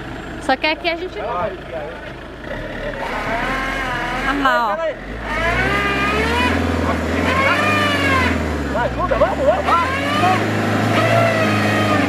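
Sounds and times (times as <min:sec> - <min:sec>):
van engine revving under load: 0:00.0 - 0:12.0.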